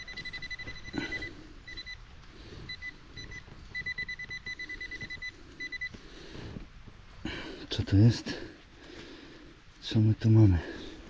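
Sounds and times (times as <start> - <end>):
metal detector beeping: 0.0 - 2.0, 2.6 - 6.0.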